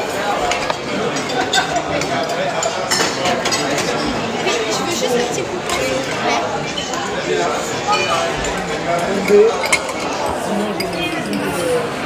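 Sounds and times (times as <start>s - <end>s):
many diners talking: 0.0s - 12.0s
cutlery and glassware clinking: 0.4s - 12.0s.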